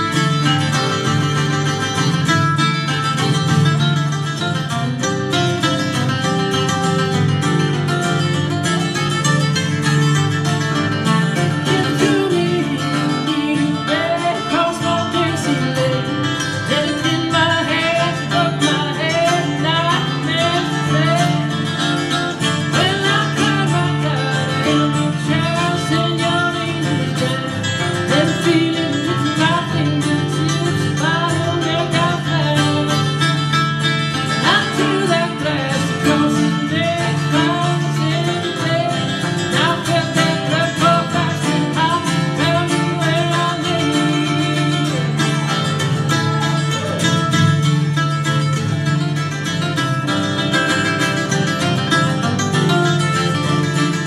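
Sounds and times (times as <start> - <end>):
acoustic guitars playing bluegrass: 0.0 - 54.0.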